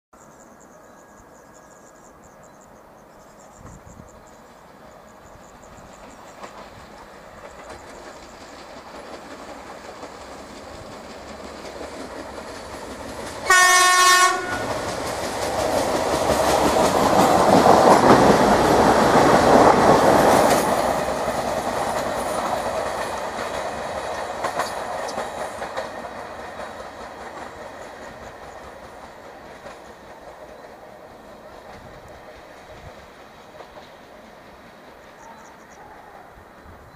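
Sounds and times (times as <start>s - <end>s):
railcar engine and wheels rumbling: 0.2s - 36.9s
train horn blast: 13.4s - 14.8s.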